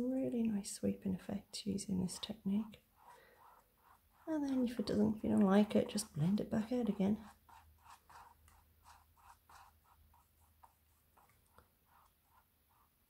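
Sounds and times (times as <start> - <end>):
soft brush strokes on canvas: 0.4 - 13.0.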